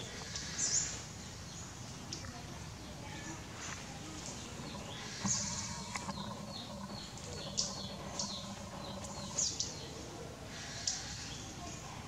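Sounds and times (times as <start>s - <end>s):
birds chirping: 0.0s - 12.0s
steady low hum: 0.0s - 12.0s.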